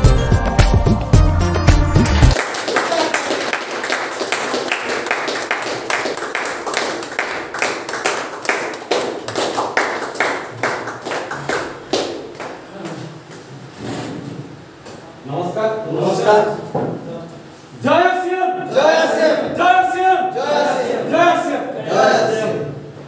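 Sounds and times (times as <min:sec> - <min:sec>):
hands clapping in rhythm: 0:00.5 - 0:12.7
voices: 0:15.3 - 0:22.8.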